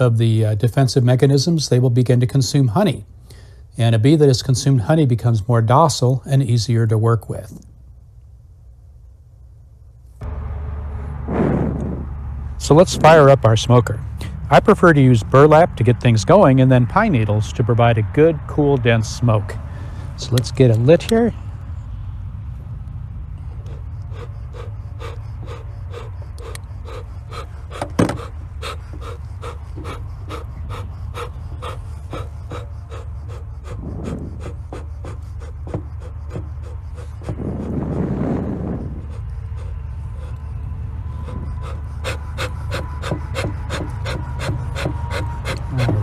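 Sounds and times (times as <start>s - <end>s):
rush of noise: 10.2s - 14.6s, 23.4s - 43.2s
bellows puffing: 10.9s - 16.4s, 23.2s - 46.0s.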